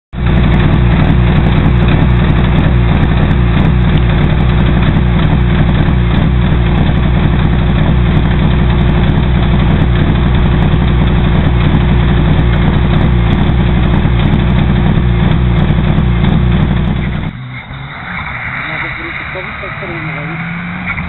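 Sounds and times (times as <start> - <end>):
car engine idling: 0.1 - 21.0.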